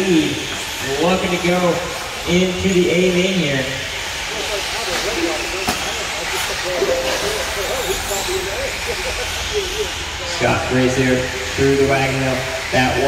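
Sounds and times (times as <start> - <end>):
rc truck motors and tyres hissing: 0.1 - 13.0
faint indistinct voices: 2.6 - 13.0.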